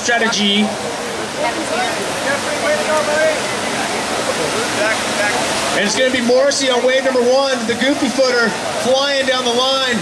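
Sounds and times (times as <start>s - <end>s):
ocean surf breaking: 0.0s - 10.0s.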